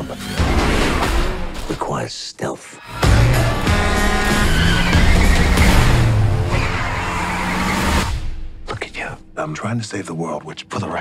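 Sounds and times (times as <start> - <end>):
tyres squealing: 2.9 - 8.1
sports car engine revving: 2.9 - 8.4.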